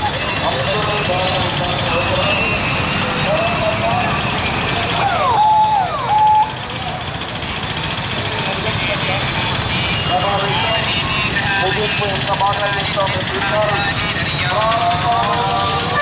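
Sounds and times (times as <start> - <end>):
people's voices: 0.0 - 16.0
street traffic engines: 0.0 - 16.0.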